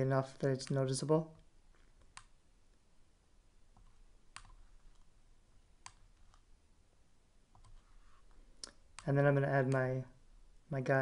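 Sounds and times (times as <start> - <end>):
computer mouse clicks: 2.0 - 2.4, 3.8 - 5.1, 5.8 - 6.5, 7.5 - 7.8.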